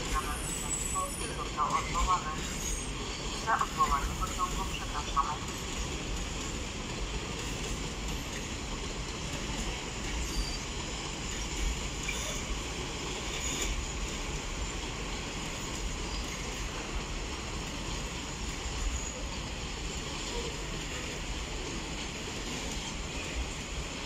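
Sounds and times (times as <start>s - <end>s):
train wheels rolling on rails: 0.0s - 24.0s.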